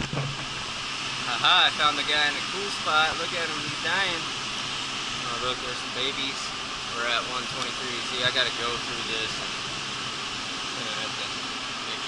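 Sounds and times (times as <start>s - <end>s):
blowers rushing hiss: 0.4s - 12.0s.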